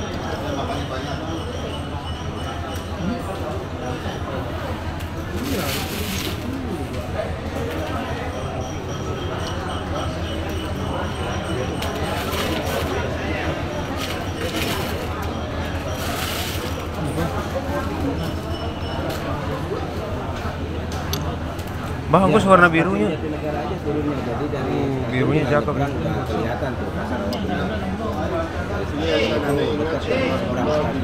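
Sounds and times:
indistinct background voices: 0.0 - 31.0.

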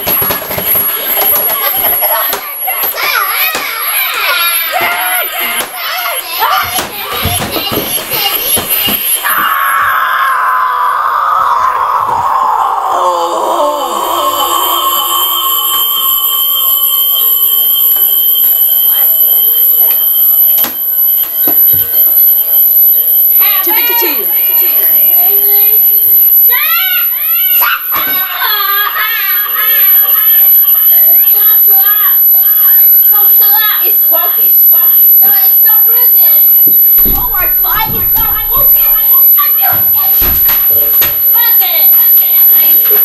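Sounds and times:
electronic toy tone sliding down: 13.9 - 43.0
child shouting: 26.5 - 30.1.

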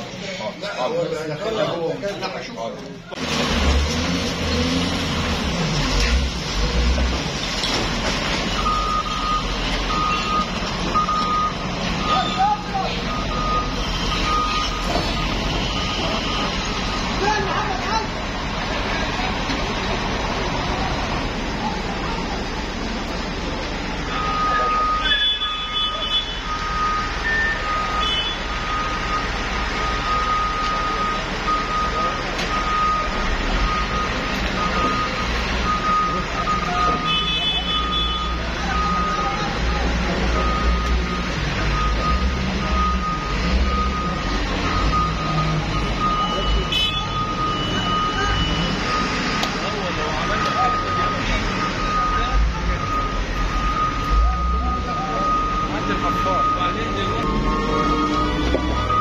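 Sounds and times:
crowd voices: 0.0 - 59.0
front loader engine running: 0.0 - 59.0
reversing alarm beeping: 8.5 - 17.6, 24.0 - 59.0.

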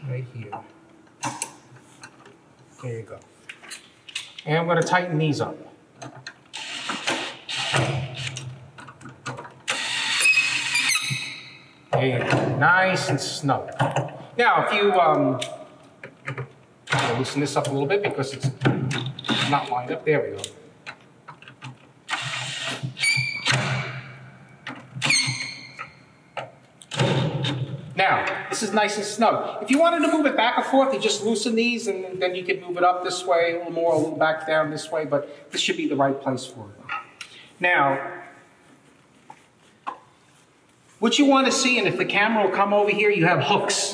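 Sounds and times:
cordless drill driving screws: 6.5 - 8.3, 9.7 - 10.7, 22.1 - 23.2.

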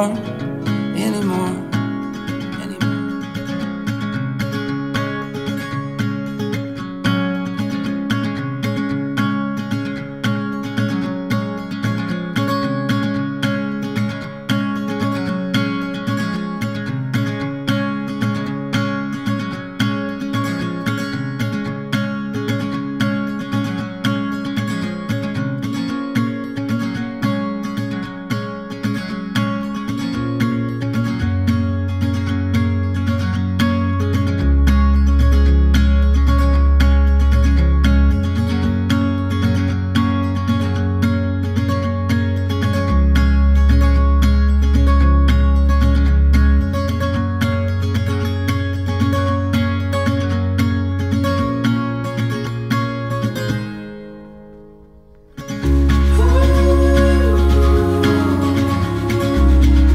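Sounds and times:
strummed acoustic guitar: 0.0 - 59.9
low bass note: 55.6 - 59.9.

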